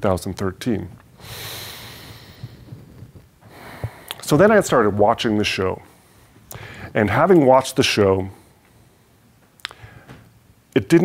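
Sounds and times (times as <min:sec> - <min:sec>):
man breathing out: 0:01.2 - 0:04.2, 0:06.0 - 0:07.0.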